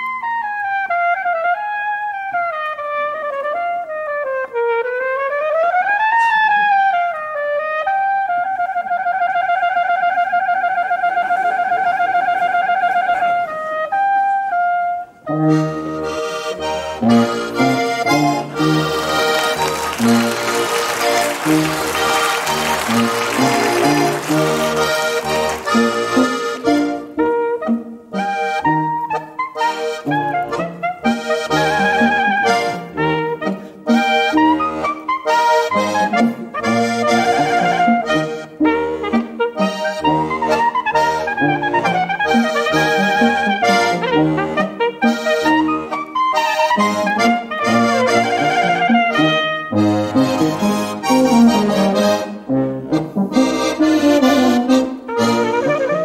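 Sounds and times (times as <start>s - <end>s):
folk band with brass and accordion: 0.0s - 56.0s
wind instrument solo: 0.0s - 56.0s.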